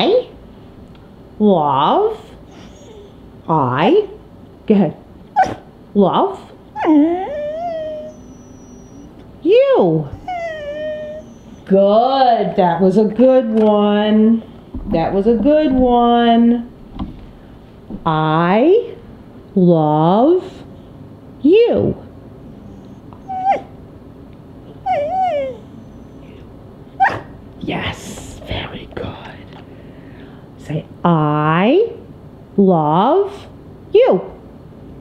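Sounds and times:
dog drawn-out vocal call: 0:05.4 - 0:05.7, 0:06.8 - 0:09.2, 0:10.2 - 0:11.7, 0:24.8 - 0:27.4.

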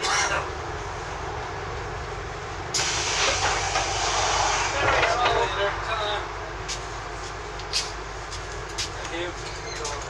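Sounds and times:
bus engine rumble: 0:00.0 - 0:10.0
loud hiss: 0:02.7 - 0:05.2
voices: 0:04.6 - 0:06.9, 0:08.4 - 0:10.0.

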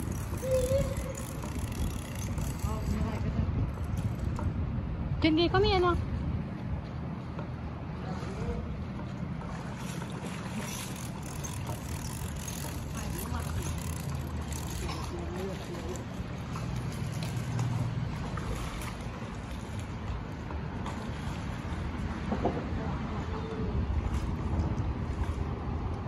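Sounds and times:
wind on microphone: 0:00.0 - 0:06.8.

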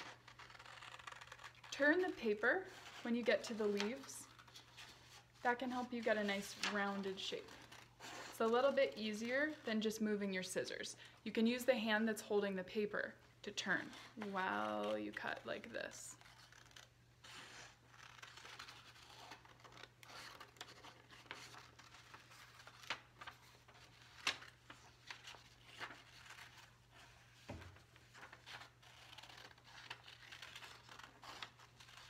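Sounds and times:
scissors snipping paper: 0:00.0 - 0:04.5, 0:28.5 - 0:32.0
paper rustling: 0:00.0 - 0:10.0, 0:13.6 - 0:32.0.

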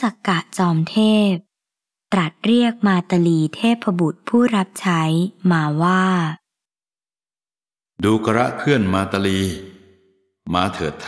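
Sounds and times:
narrator's voice: 0:00.0 - 0:01.4, 0:02.2 - 0:06.4, 0:08.0 - 0:09.8, 0:10.5 - 0:11.0.

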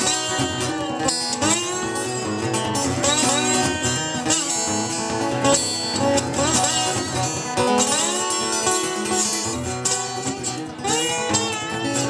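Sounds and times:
acoustic guitars playing: 0:00.0 - 0:12.0.

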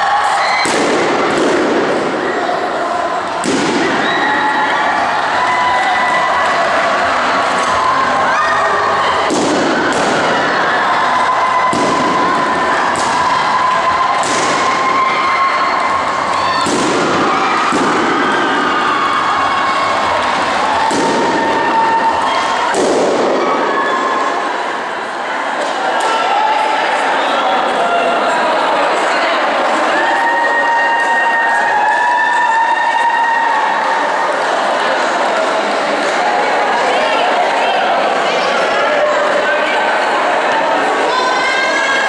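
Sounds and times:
crowd shouting and cheering: 0:00.0 - 0:42.0
balloons popping: 0:00.6 - 0:02.0, 0:03.4 - 0:04.1, 0:14.2 - 0:14.7, 0:16.6 - 0:18.2, 0:22.7 - 0:23.3.

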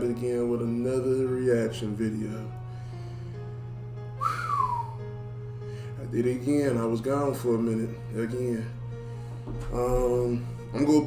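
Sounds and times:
low background hum: 0:00.0 - 0:11.0
short sliding whistle: 0:04.2 - 0:05.0.

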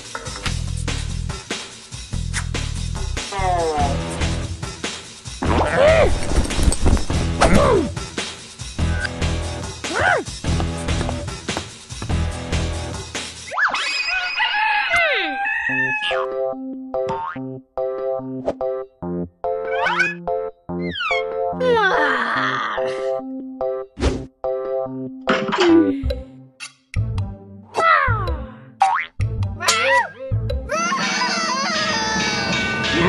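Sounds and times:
cartoon dog crying: 0:13.9 - 0:16.3, 0:19.6 - 0:22.9, 0:29.6 - 0:32.4
rooster crowing: 0:14.2 - 0:16.3
bright cartoon music: 0:15.7 - 0:33.0.

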